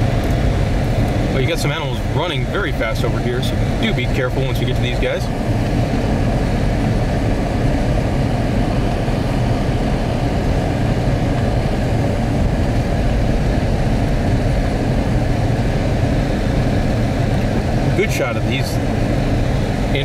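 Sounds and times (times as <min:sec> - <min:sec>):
car engine and tyres rumbling: 0:00.0 - 0:20.0.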